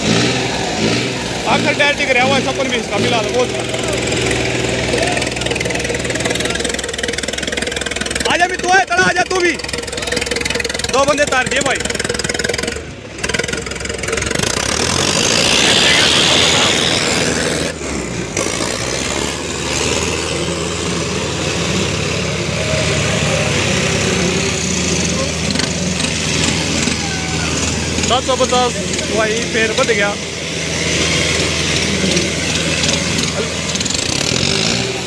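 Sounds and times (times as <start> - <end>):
tractor diesel engines under load: 0.0 - 35.0
tyres scrubbing on tarmac: 14.4 - 35.0.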